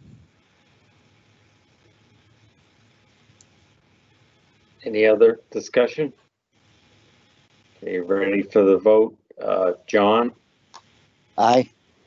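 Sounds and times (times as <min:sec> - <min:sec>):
faint audio line hiss: 0:00.0 - 0:12.0
person speaking: 0:04.9 - 0:06.1, 0:07.8 - 0:10.3, 0:11.4 - 0:11.7.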